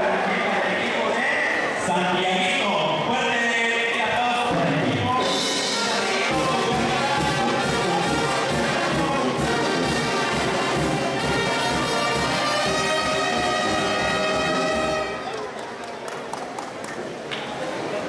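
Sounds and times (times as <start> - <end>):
brass band music: 4.6 - 15.4.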